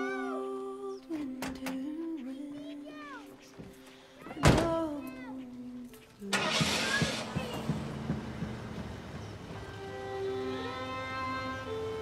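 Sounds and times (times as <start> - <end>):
truck engine starting and knocking: 6.2 - 12.0.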